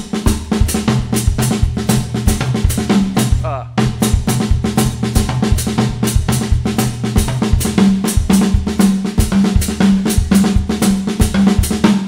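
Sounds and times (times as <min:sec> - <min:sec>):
drum kit groove: 0:00.0 - 0:12.0.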